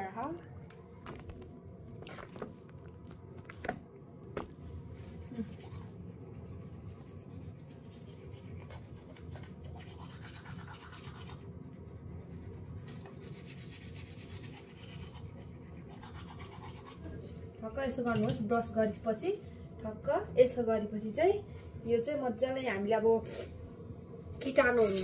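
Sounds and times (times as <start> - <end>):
bristles scrubbing teeth: 5.3 - 11.5, 13.2 - 17.1.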